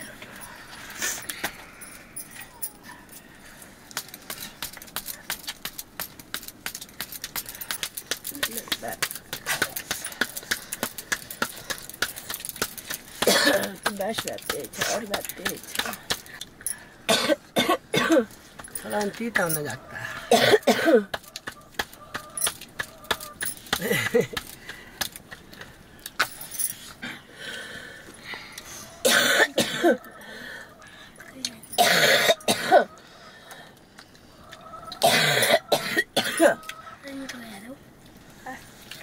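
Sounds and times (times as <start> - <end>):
people talking: 8.3 - 10.2, 13.3 - 16.0, 18.8 - 19.8, 37.0 - 37.8.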